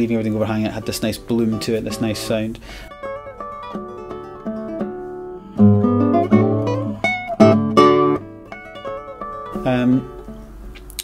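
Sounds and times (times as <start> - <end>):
fingerstyle classical guitar: 0.0 - 11.0.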